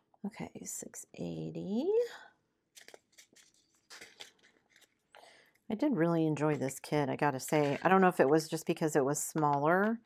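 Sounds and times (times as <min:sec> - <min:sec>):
plastic bag crinkling: 0:02.7 - 0:05.2.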